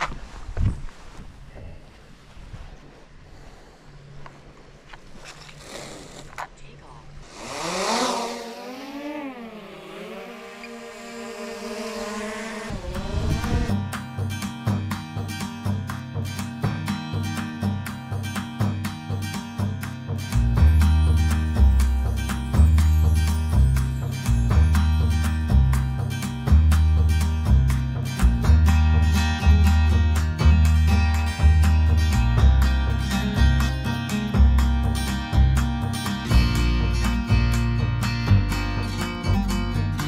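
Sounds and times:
drone propellers whining: 0:07.2 - 0:13.8
music with plucked guitar: 0:12.8 - 0:40.0.

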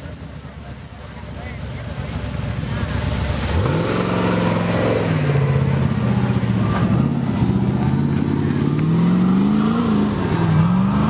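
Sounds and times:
buggy engine revving hard: 0:02.0 - 0:11.0.

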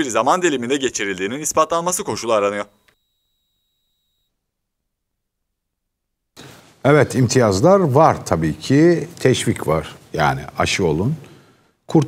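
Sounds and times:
faint high steady tone: 0:01.5 - 0:06.3.

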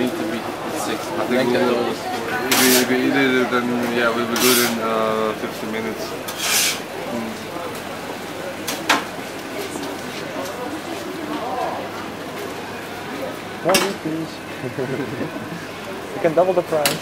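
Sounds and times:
murmur of voices: 0:00.0 - 0:17.0
metal spoons scraping steel trays: 0:02.5 - 0:02.9, 0:04.3 - 0:04.8, 0:06.3 - 0:06.8.

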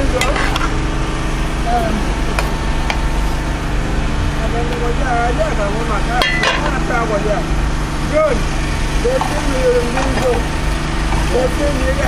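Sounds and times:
low engine-like hum: 0:00.0 - 0:12.0.

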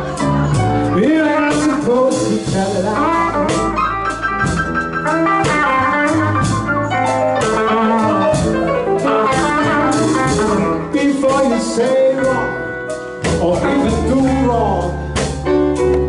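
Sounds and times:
electric guitar lead: 0:00.0 - 0:16.0
steady drum beat: 0:00.0 - 0:16.0.

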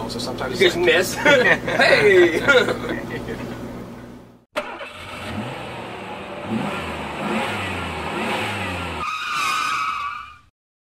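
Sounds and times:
vehicle engine revving: 0:04.6 - 0:09.1
tyres skidding squeal: 0:08.9 - 0:10.5.

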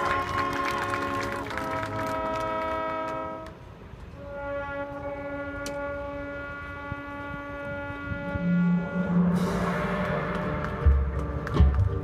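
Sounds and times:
marching band holding a chord: 0:00.0 - 0:12.0
loud low brass note: 0:04.2 - 0:11.8.

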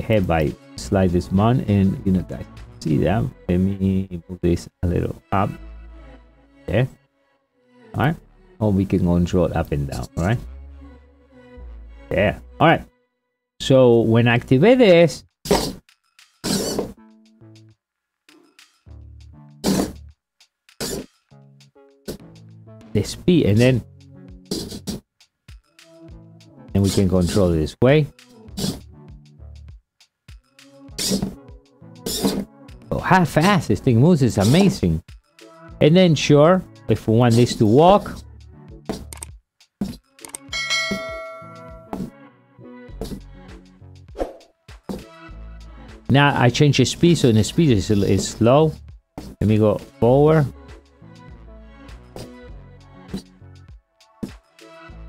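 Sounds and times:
background music: 0:00.0 - 0:55.0
bell chime: 0:40.5 - 0:42.0.

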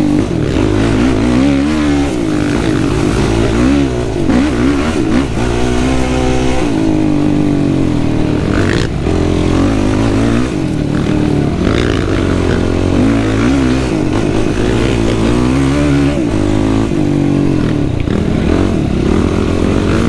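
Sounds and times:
quad engine revving: 0:00.0 - 0:20.0.

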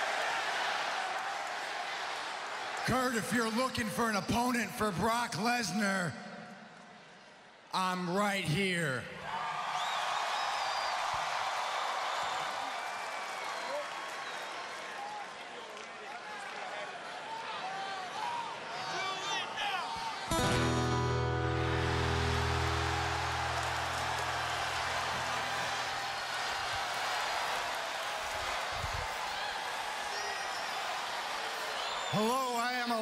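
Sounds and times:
crowd cheering and whooping: 0:09.3 - 0:15.4, 0:16.0 - 0:32.3
loud guitar chord ringing: 0:20.3 - 0:26.4
wrestling entrance music: 0:20.3 - 0:27.6.

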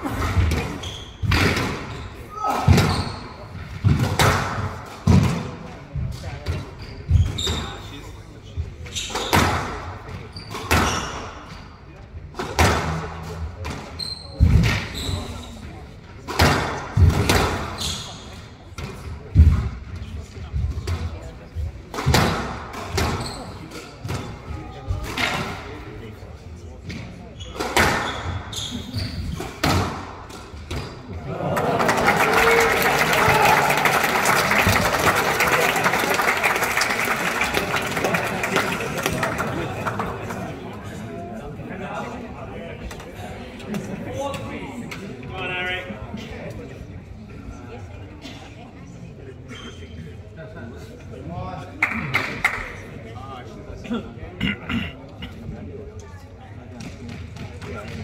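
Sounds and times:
shoes squeaking on wooden court: 0:00.3 - 0:03.6, 0:06.4 - 0:08.0, 0:10.1 - 0:11.6, 0:13.7 - 0:15.7, 0:17.7 - 0:18.9, 0:22.9 - 0:24.3, 0:26.9 - 0:29.8, 0:30.5 - 0:31.2
squash ball striking walls: 0:02.6 - 0:03.0, 0:29.6 - 0:30.8
audience applause: 0:31.3 - 0:40.7.

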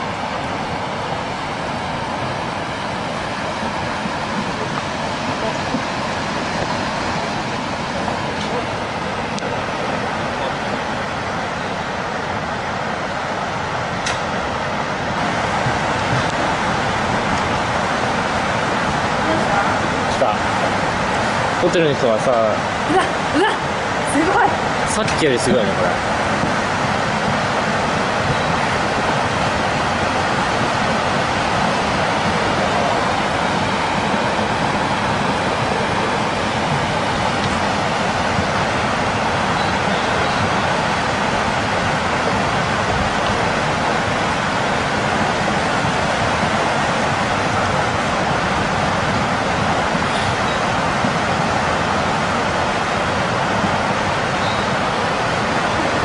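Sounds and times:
floodwater rushing: 0:00.0 - 0:56.0.

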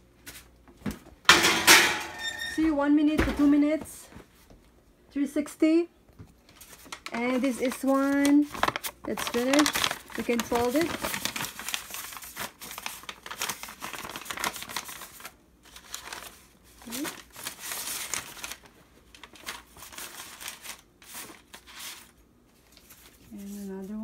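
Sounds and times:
stiff paper crinkling: 0:06.4 - 0:24.0.

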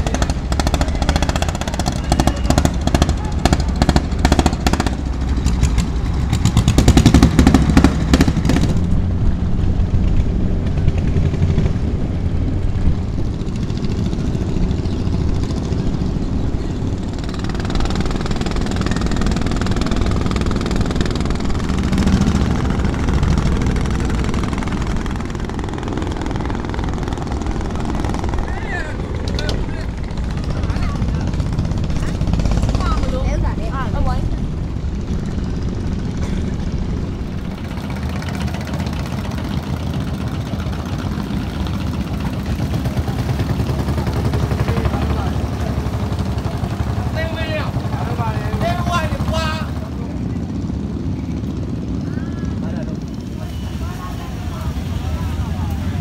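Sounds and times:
people talking: 0:00.0 - 0:04.1, 0:27.6 - 0:34.5, 0:40.2 - 0:51.4, 0:52.0 - 0:56.0
boat engine knocking: 0:00.0 - 0:50.3.

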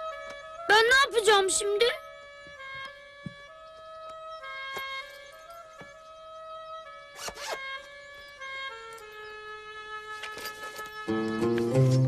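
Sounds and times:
soft background music: 0:00.0 - 0:12.0
backpack zipper rasping: 0:07.2 - 0:07.6.

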